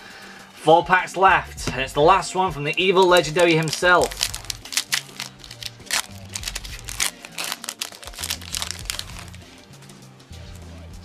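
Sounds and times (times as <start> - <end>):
background music with bass: 0.0 - 11.0
foil wrapper crinkling: 2.8 - 9.5.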